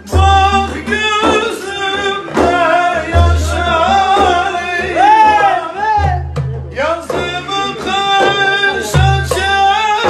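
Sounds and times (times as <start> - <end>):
frame drum strikes: 0.0 - 10.0
man singing folk song: 0.0 - 10.0.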